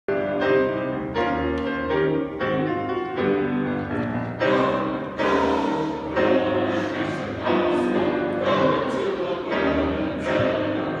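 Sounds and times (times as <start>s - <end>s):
mixed choir singing: 4.4s - 11.0s.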